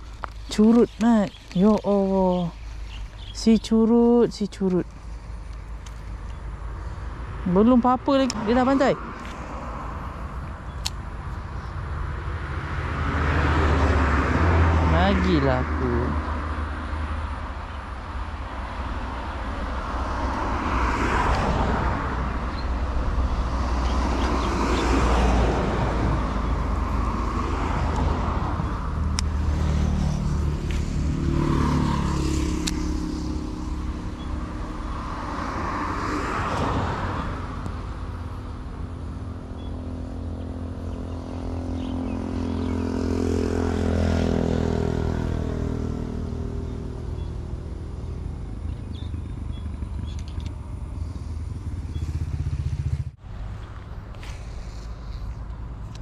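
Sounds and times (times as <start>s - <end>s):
vehicles passing by: 0.0s - 56.0s.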